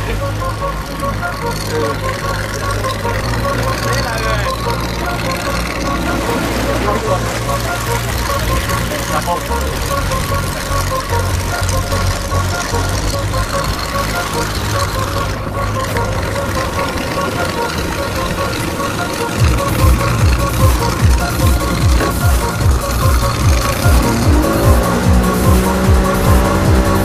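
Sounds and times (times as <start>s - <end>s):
music with a steady beat: 0.0s - 27.0s
outboard motor running: 0.0s - 27.0s.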